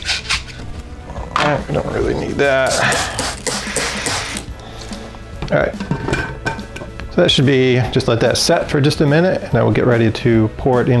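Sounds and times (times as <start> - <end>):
spray bottle spritzing: 2.7 - 4.5.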